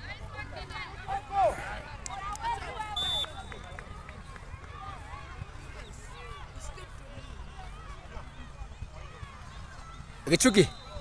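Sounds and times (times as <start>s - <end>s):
distant shouts and voices: 0.0s - 11.0s
referee's whistle blast: 2.9s - 3.6s.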